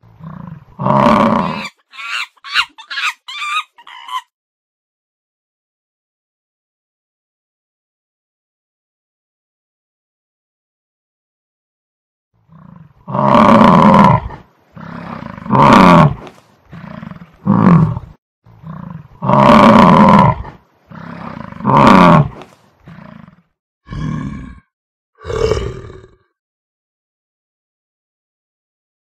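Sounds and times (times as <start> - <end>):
large animal roaring: 0.0 - 1.8, 12.5 - 26.3.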